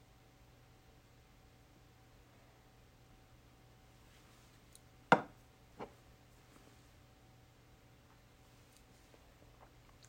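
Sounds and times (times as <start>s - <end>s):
bottle knocking on hard surface: 5.1s - 5.3s.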